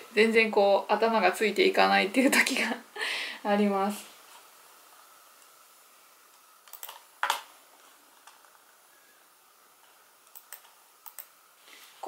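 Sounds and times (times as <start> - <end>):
laptop keys clicking: 6.7 - 7.4, 10.3 - 11.3.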